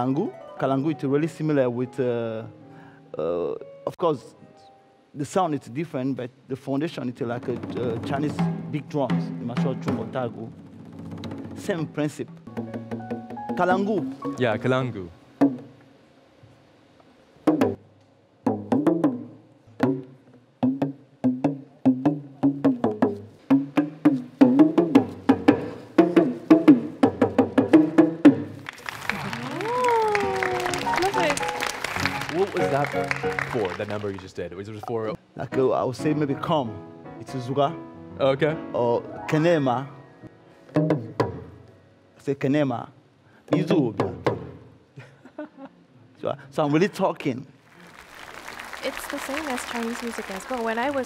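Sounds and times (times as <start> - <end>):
talking drum struck with stick: 7.4 - 14.1, 43.5 - 44.6
audience applause: 28.6 - 34.4, 47.7 - 51.0.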